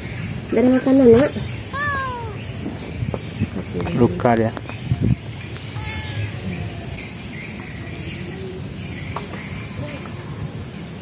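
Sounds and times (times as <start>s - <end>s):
cat meowing: 5.8s - 6.8s.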